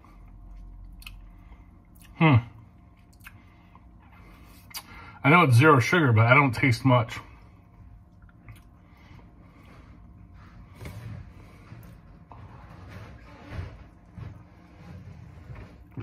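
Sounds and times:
swallowing: 8.1s - 9.0s.

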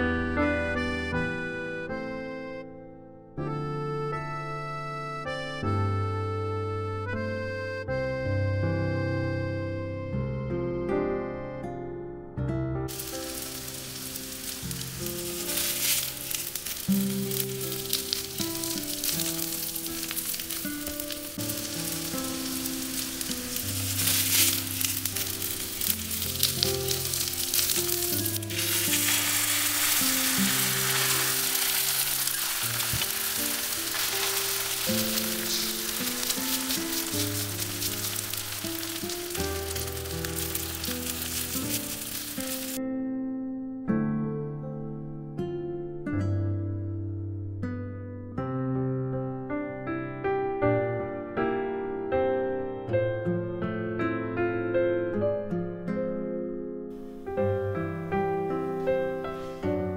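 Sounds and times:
background music: 0.0s - 42.8s
pancake sizzling in oil: 12.9s - 42.8s.

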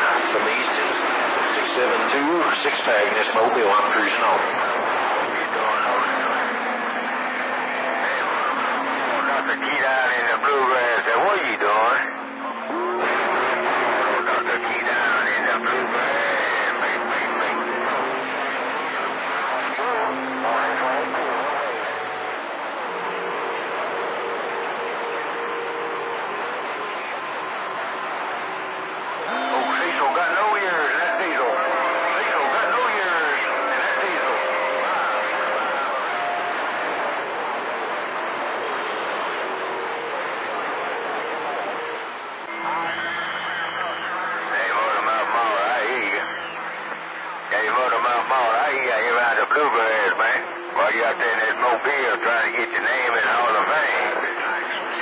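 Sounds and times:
faint radio voices: 0.0s - 55.0s
radio static hiss: 0.0s - 55.0s.

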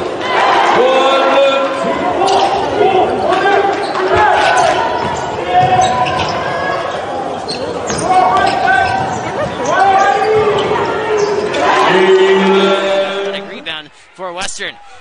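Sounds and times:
shouts and voices: 7.9s - 15.0s.

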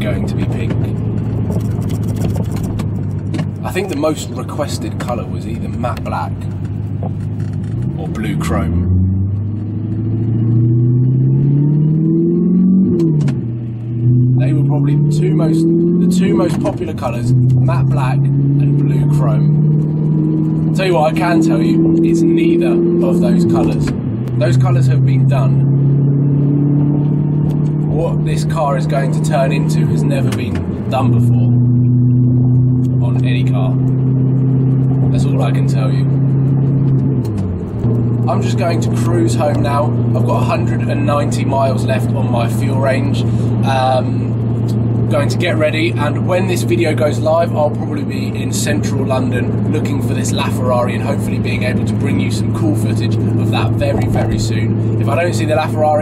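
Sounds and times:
car engine accelerating: 0.0s - 56.0s.

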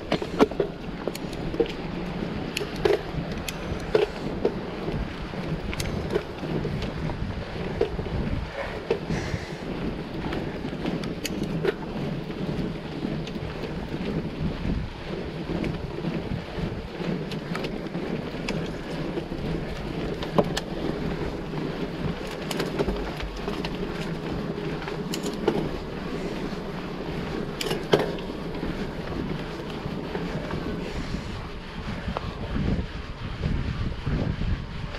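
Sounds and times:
tyres rumbling on stones: 0.0s - 32.5s
bike clacking and rattling: 0.0s - 34.9s.

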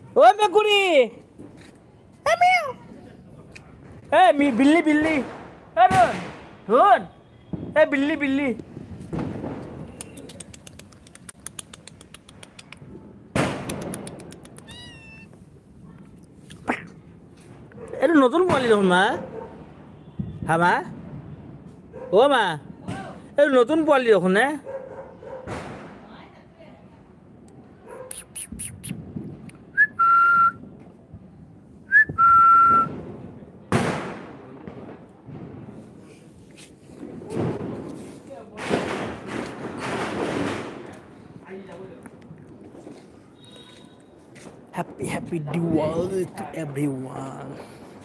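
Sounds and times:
firecracker crackles: 2.8s - 6.7s, 7.5s - 16.5s, 28.1s - 48.0s
sharp bang: 13.3s - 14.0s
cat meowing: 14.3s - 15.4s
short upward whistles: 29.8s - 30.6s, 31.9s - 32.9s.

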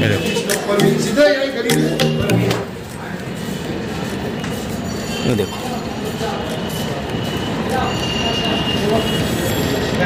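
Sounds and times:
city street traffic: 0.0s - 10.0s
thin high tone: 0.5s - 2.8s.

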